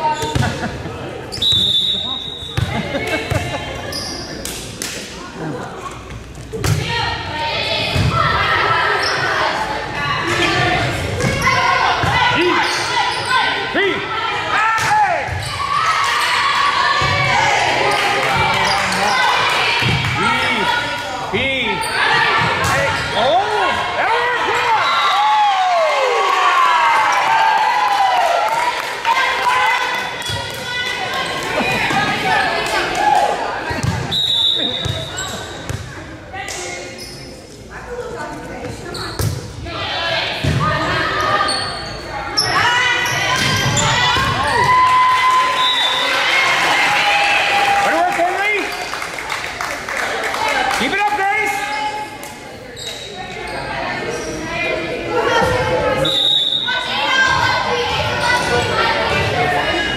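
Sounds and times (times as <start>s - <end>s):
referee's whistle: 1.3s - 2.6s, 34.1s - 35.3s, 45.5s - 46.1s, 56.0s - 56.9s
people shouting and cheering: 6.6s - 35.2s, 39.7s - 48.8s, 54.3s - 59.9s.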